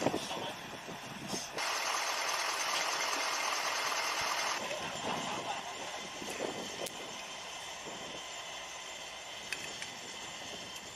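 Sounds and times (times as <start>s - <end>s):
truck driving slowly: 0.0s - 10.9s.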